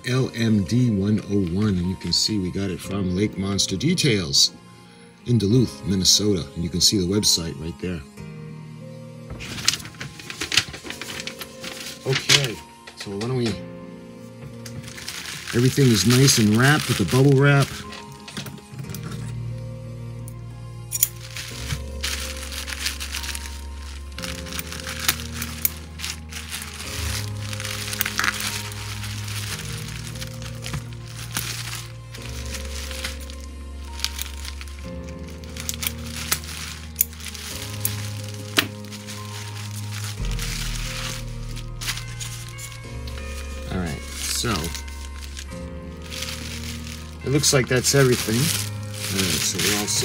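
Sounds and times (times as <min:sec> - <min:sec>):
background music with bass notes: 0:00.0 - 0:50.0
bubble wrap crinkling: 0:09.4 - 0:13.6, 0:14.4 - 0:19.6, 0:20.4 - 0:50.0
scissors cutting plastic: 0:14.7 - 0:19.4, 0:20.9 - 0:43.4, 0:44.1 - 0:50.0.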